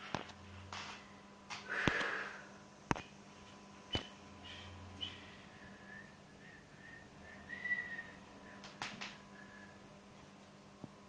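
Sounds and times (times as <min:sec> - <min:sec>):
low steady hum: 0:00.0 - 0:11.0
person whistling: 0:05.0 - 0:08.6, 0:09.3 - 0:09.8.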